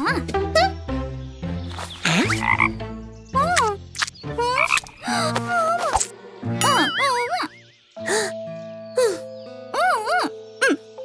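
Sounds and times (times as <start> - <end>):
cartoon background music: 0.0 - 11.0.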